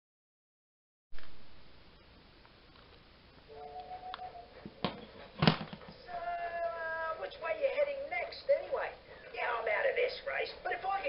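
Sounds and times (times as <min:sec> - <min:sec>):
brief pitched tone: 0:03.5 - 0:04.5.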